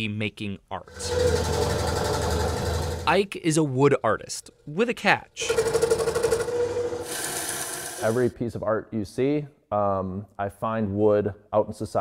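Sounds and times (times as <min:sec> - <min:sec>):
hiss of saw cutting wood: 0:06.5 - 0:08.3.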